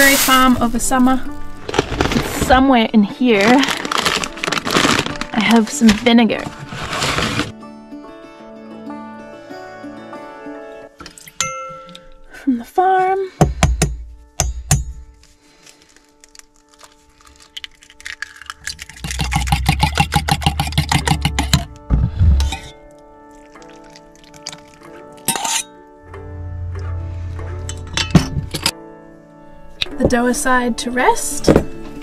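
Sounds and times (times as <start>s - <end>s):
background music: 0.0s - 32.0s
egg cracked against cup: 17.3s - 21.6s
fork whisking egg in metal cup: 17.6s - 21.6s.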